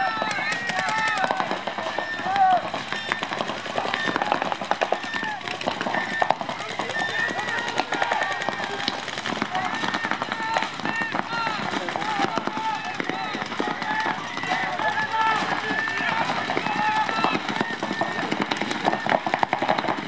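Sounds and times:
voices shouting: 0.0 - 20.0.

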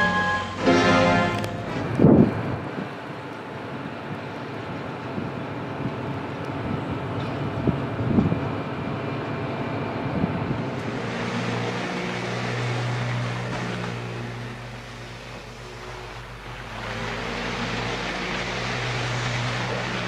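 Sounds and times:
motor drone with low hum: 6.4 - 20.0.

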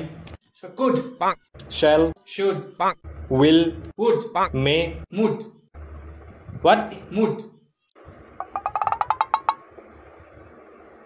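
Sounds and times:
short pitched comic knocks: 8.4 - 9.7.

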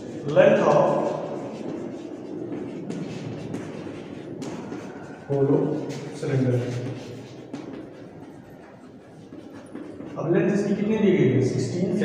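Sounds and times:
chalk scratching on blackboard: 0.0 - 12.0
chalk tapping on blackboard: 0.2 - 12.0.

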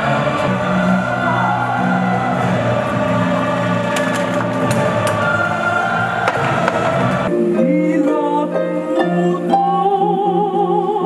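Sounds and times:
choir singing long held notes: 0.0 - 11.0.

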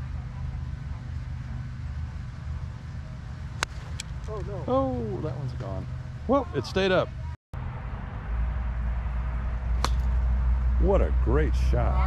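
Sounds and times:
low steady rumble: 0.0 - 12.0
golf club striking ball: 9.8 - 10.3.

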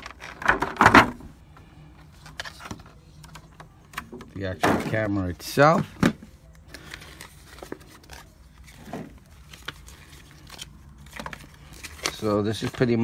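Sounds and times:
paper rustling: 6.7 - 13.0.

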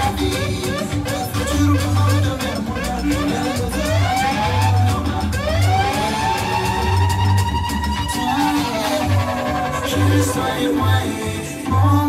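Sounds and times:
bass beat: 0.0 - 12.0
live band over pa system: 0.0 - 12.0.

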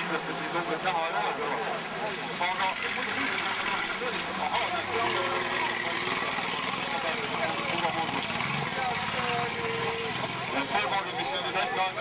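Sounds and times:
buggy engine running: 0.0 - 12.0.

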